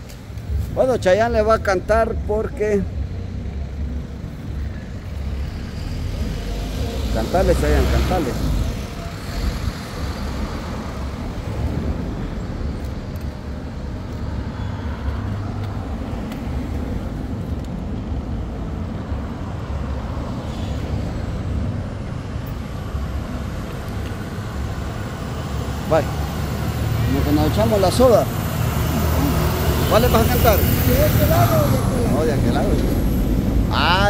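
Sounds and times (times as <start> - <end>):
passing vehicles rumbling: 0.0 - 34.0.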